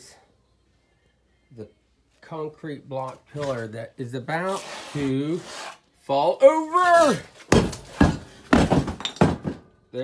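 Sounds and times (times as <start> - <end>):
concrete blocks hitting floor: 7.5 - 9.7.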